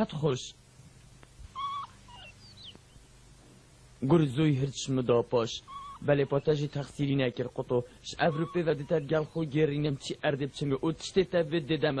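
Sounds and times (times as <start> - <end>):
high-pitched animal calls: 1.5 - 3.0, 5.6 - 6.7, 8.2 - 9.5.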